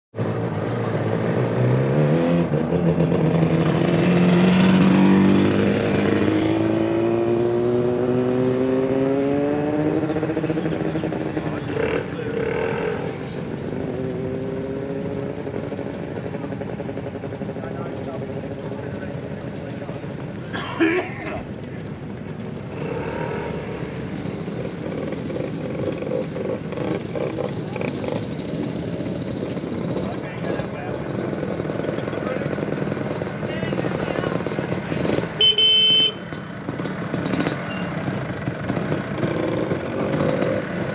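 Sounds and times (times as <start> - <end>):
motor scooter engines running: 0.2 - 40.9.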